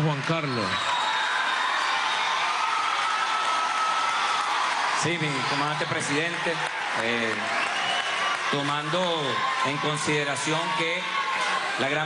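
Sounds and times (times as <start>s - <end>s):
speech: 0.0s - 0.8s, 8.6s - 11.1s
audience applauding and cheering: 0.0s - 12.0s.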